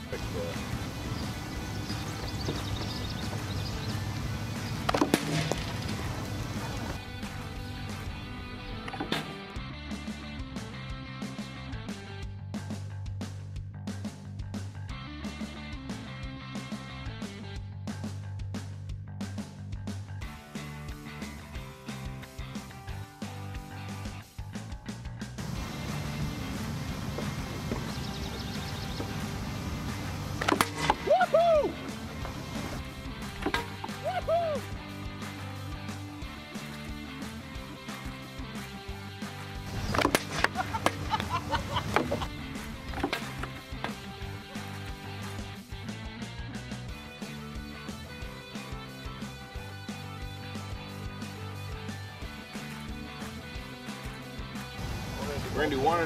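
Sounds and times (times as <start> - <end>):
guitar music with steady beat: 20.2 - 24.7, 25.4 - 56.0.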